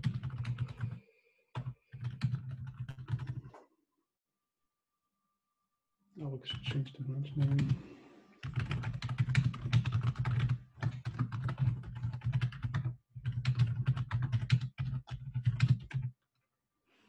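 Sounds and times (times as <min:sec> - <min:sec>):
fast typing on keyboard: 0:00.0 - 0:01.0, 0:01.6 - 0:03.6, 0:07.4 - 0:07.8, 0:08.4 - 0:16.1.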